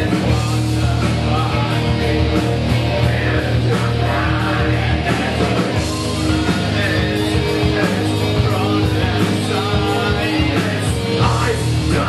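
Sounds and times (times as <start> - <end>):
metalcore band playing live: 0.0 - 12.0.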